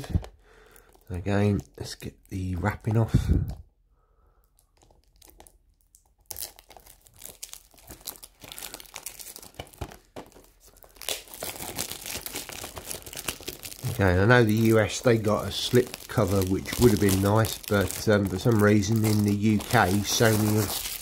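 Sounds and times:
cellophane crinkling and tearing: 0:00.0 - 0:03.0, 0:04.4 - 0:21.0.

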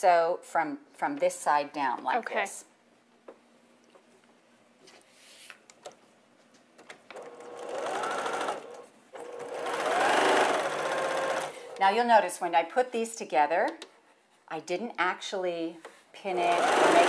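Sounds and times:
sewing machine stitching: 0:07.1 - 0:11.8, 0:16.3 - 0:17.0.

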